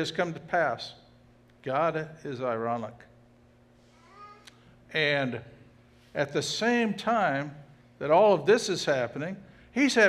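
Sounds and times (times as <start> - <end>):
man speaking: 1.6 - 3.2, 4.9 - 5.5, 6.2 - 10.0
faint high-pitched voice-like sound: 3.9 - 4.5.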